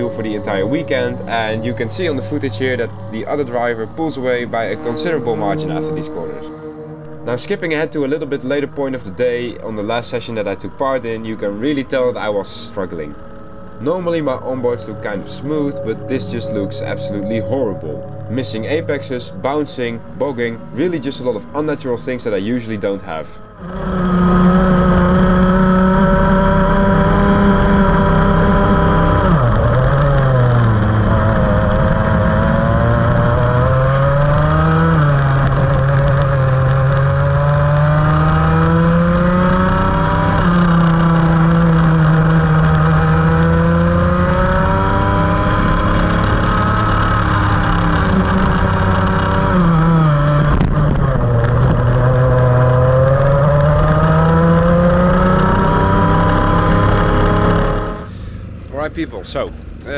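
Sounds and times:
kart engine revving: 0:00.0 - 0:58.6.

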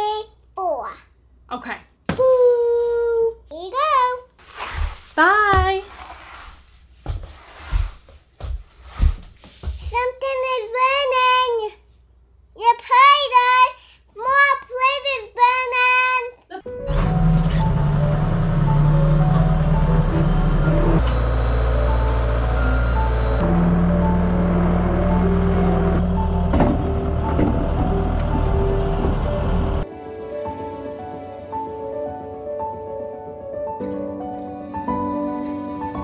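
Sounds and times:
small child singing: 0:09.8 - 0:11.8, 0:12.6 - 0:16.4
background music: 0:16.6 - 0:36.0
skid steer engine running: 0:16.7 - 0:29.8.

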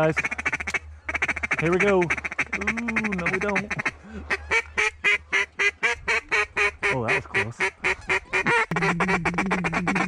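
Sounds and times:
duck call quacks: 0:00.0 - 0:10.0.

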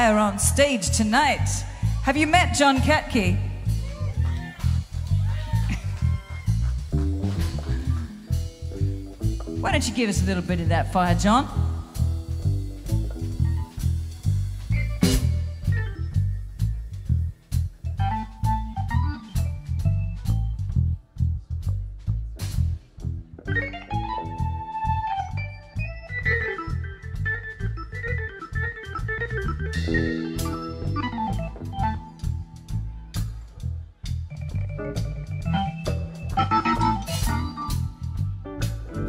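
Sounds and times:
bass guitar: 0:00.0 - 0:39.0
drums: 0:00.0 - 0:39.0
organ keyboard solo: 0:11.1 - 0:20.7, 0:23.4 - 0:33.2, 0:34.0 - 0:39.0.

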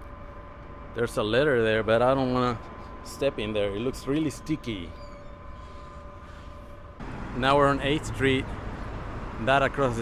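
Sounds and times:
city street traffic rumble: 0:06.9 - 0:10.0.

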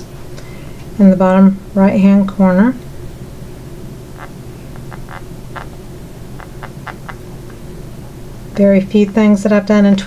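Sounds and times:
low background hum: 0:00.0 - 0:10.0
marker scratching on paper: 0:06.4 - 0:07.2.

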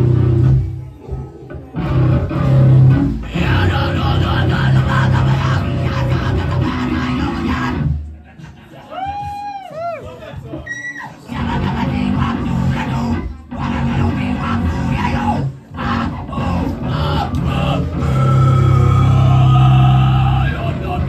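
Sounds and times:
electric bass: 0:00.0 - 0:00.9, 0:01.6 - 0:08.1, 0:11.3 - 0:21.0
drums: 0:00.0 - 0:21.0
electric guitar: 0:01.5 - 0:08.0.

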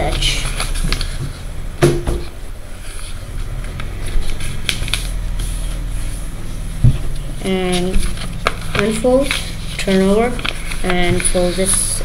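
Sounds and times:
paper crinkling: 0:00.0 - 0:01.4, 0:02.7 - 0:06.2, 0:07.4 - 0:12.0
steady low hum: 0:00.0 - 0:12.0
thump on wooden table: 0:01.8 - 0:02.3.

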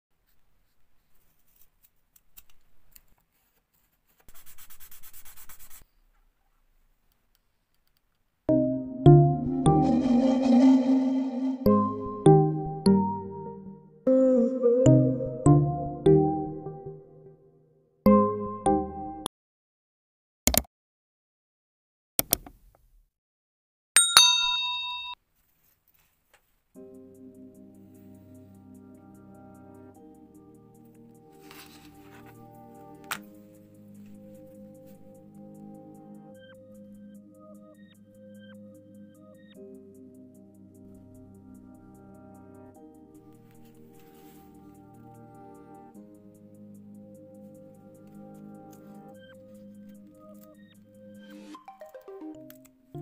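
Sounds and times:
marker scratching on wood: 0:03.4 - 0:05.8
sandpaper rubbing on wood: 0:04.2 - 0:05.8
bell ding: 0:24.0 - 0:25.2.

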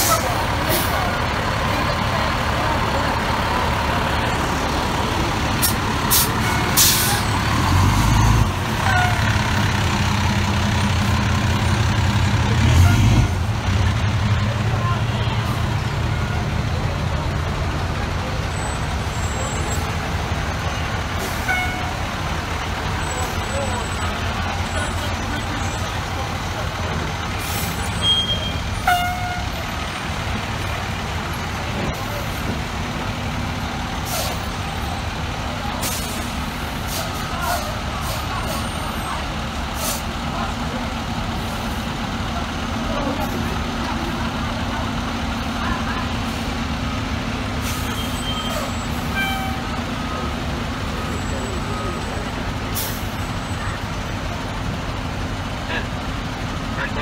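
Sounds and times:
fire truck diesel engines rumbling: 0:00.0 - 0:57.0.

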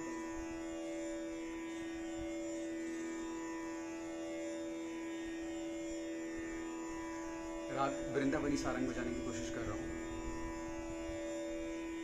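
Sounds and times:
tanpura drone: 0:00.0 - 0:12.0.

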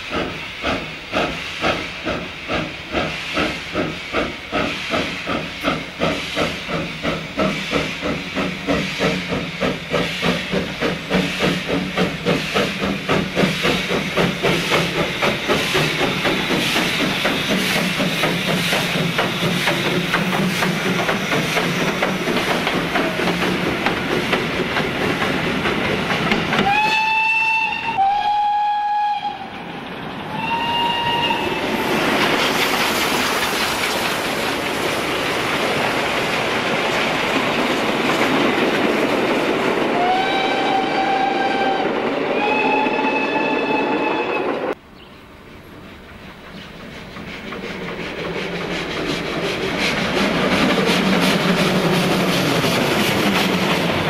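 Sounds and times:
rail noise: 0:00.0 - 0:54.0
steam locomotive running: 0:00.0 - 0:54.0
steam whistle blasts: 0:26.6 - 0:31.8, 0:40.0 - 0:44.7.

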